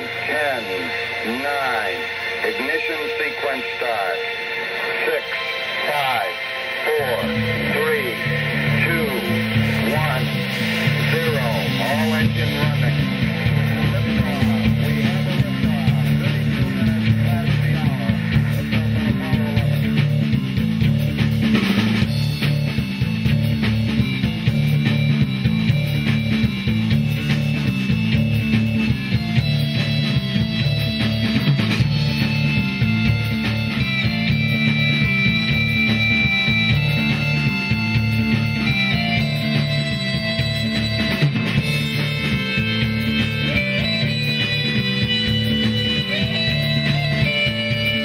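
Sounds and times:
sustained high notes: 0.0 - 15.2
drum kit: 0.0 - 48.0
electric guitar: 0.0 - 48.0
keyboards: 0.0 - 48.0
repeating bass line: 0.0 - 48.0.

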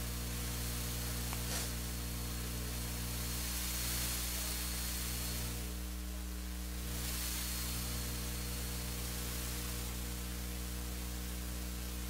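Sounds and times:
electrical mains hum: 0.0 - 12.0
recording hiss: 0.0 - 12.0.

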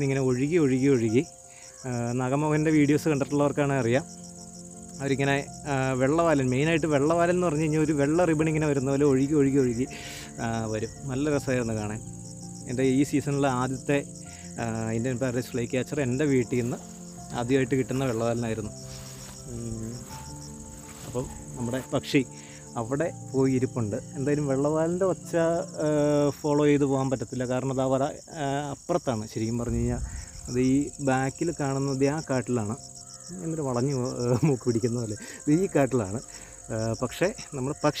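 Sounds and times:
soft piano notes: 0.0 - 28.0
crickets chirping: 0.0 - 38.0
insect trill: 0.0 - 38.0
man talking: 12.7 - 18.8, 19.5 - 20.2, 21.0 - 38.0.

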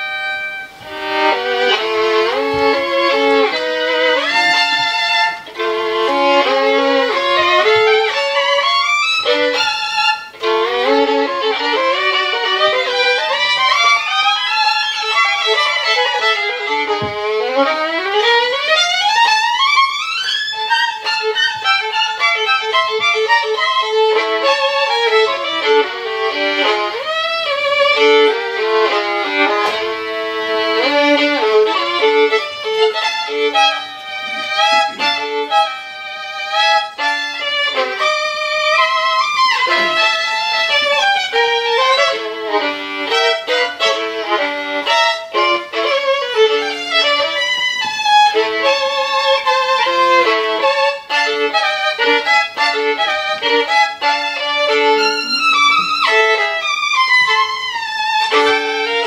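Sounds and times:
solo violin bowed: 0.0 - 59.0.

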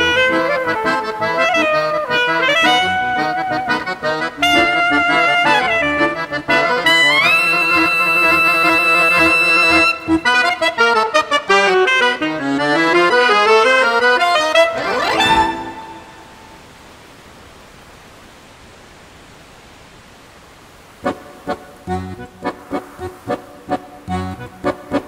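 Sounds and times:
accordion playing: 0.0 - 16.6, 21.0 - 25.0
saxophone playing: 0.0 - 16.6
steady background noise: 0.0 - 25.0.

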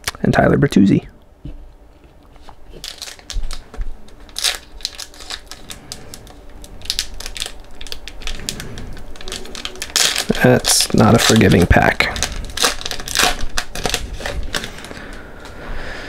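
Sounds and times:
foil wrapper crinkling and tearing: 2.7 - 15.6.

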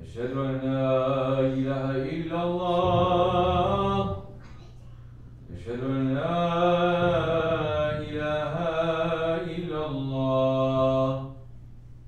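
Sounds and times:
man chanting long notes: 0.0 - 4.2.

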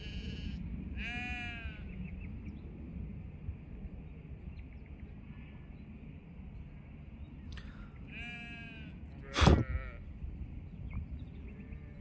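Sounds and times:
sheep bleating: 0.0 - 1.9, 8.1 - 10.0.

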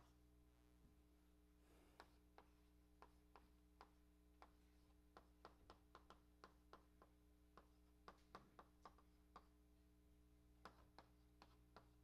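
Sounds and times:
low room hum: 0.0 - 12.0
chalk tapping on blackboard: 2.0 - 9.7, 10.6 - 12.0.

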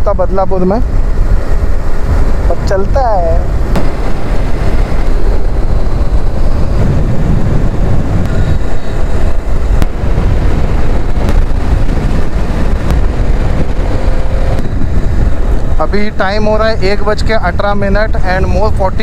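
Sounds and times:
wind rumble on microphone: 0.0 - 19.0
motorcycle engine: 0.8 - 17.1.

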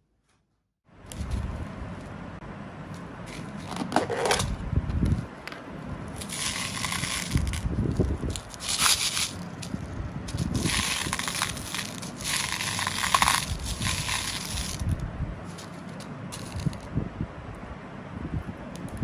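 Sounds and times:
seeds rattling in plastic bowl: 6.2 - 16.9.

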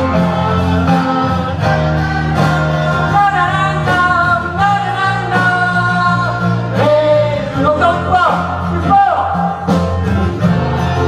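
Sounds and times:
person singing: 0.0 - 11.0
pop-rock band playing live: 0.0 - 11.0
steady bass line: 0.0 - 11.0.

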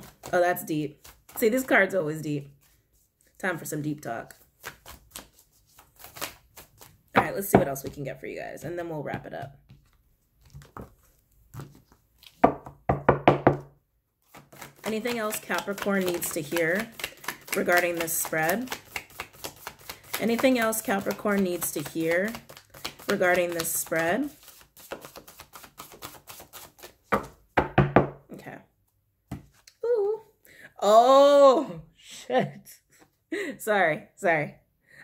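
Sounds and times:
cards being shuffled: 0.0 - 3.4, 4.2 - 8.1, 9.7 - 12.8, 14.2 - 27.4.

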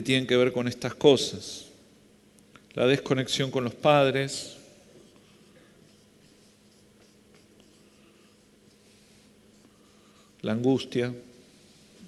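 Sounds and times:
low steady hum: 0.0 - 12.0
marker scratching on paper: 5.0 - 10.4.

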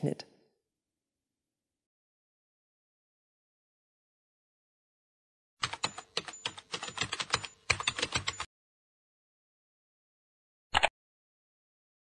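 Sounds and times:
computer keyboard typing: 5.6 - 8.5.

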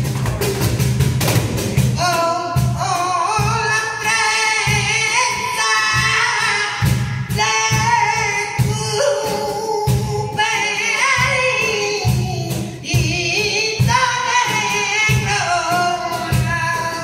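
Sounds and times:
cajon thumping: 0.0 - 17.0.

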